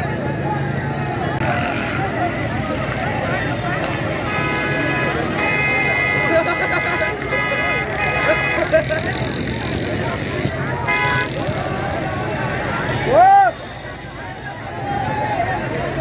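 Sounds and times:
crowd chatter: 0:00.0 - 0:16.0
traffic noise: 0:00.0 - 0:16.0
vehicle horns blaring: 0:01.4 - 0:09.1, 0:10.7 - 0:11.6.

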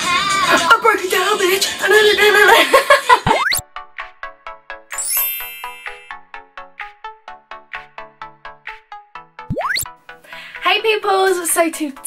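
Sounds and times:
sparkling chime: 0:04.9 - 0:06.2.

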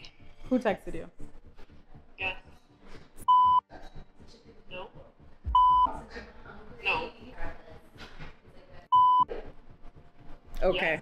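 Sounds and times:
dialogue: 0:00.4 - 0:11.0
censor bleeps: 0:05.5 - 0:05.9, 0:08.9 - 0:09.3.

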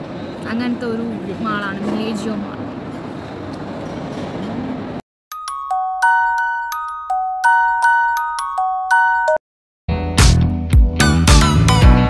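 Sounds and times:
shopping mall background noise: 0:00.0 - 0:05.0.

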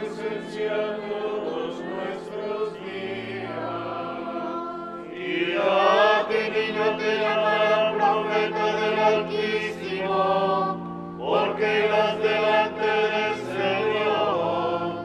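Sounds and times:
choir chanting: 0:00.0 - 0:15.0
sustained accompanying notes: 0:00.0 - 0:15.0.

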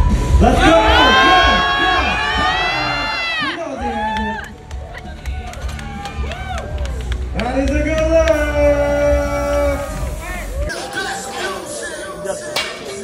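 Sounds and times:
people cheering: 0:00.2 - 0:13.0
crowd shouting encouragement: 0:00.4 - 0:07.0.

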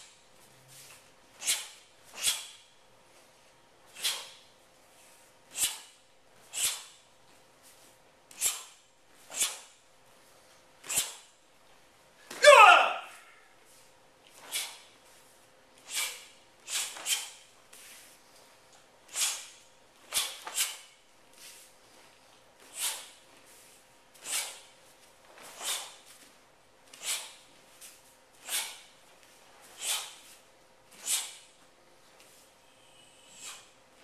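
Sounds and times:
sharp hissing breaths: 0:01.3 - 0:02.7, 0:03.9 - 0:07.0, 0:08.3 - 0:09.8, 0:10.8 - 0:11.4, 0:14.4 - 0:15.0, 0:15.8 - 0:18.1, 0:19.1 - 0:21.0, 0:22.7 - 0:23.2, 0:24.2 - 0:24.7, 0:25.5 - 0:26.1, 0:26.9 - 0:27.5, 0:28.4 - 0:29.0, 0:29.6 - 0:31.6, 0:32.6 - 0:33.8
loud martial arts shout: 0:12.3 - 0:13.4.

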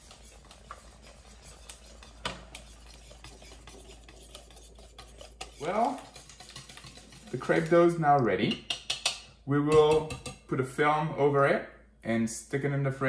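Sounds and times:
whisk ticking against bowl: 0:00.0 - 0:10.5
whisk stirring batter in a bowl: 0:00.0 - 0:10.6.

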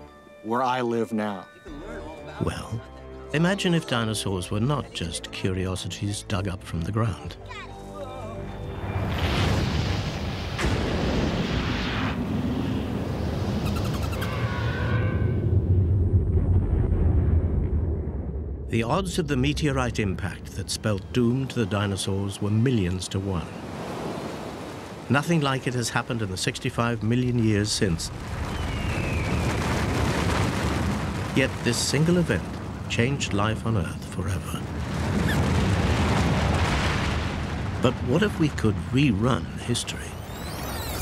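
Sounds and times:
falling whistling whoosh: 0:11.5 - 0:15.3, 0:28.4 - 0:29.9, 0:40.2 - 0:41.0
deep rumble: 0:14.4 - 0:22.5, 0:26.0 - 0:41.0.

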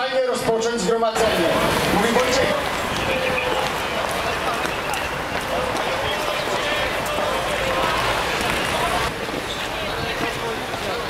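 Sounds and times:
outdoor crowd noise: 0:00.0 - 0:11.0.

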